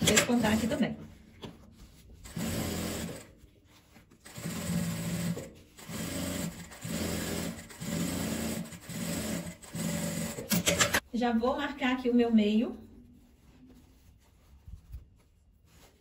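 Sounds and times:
sewing machine stitching: 0:00.0 - 0:00.9, 0:02.2 - 0:03.3, 0:04.2 - 0:11.0.

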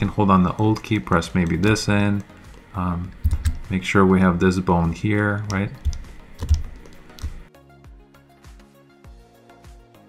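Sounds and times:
keyboard keys clicking: 0:00.0 - 0:03.8, 0:05.2 - 0:07.5
background music with steady beat: 0:00.0 - 0:10.0.

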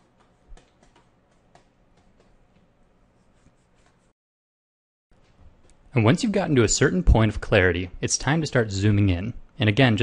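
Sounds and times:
stylus scratching on tablet: 0:03.1 - 0:04.1.

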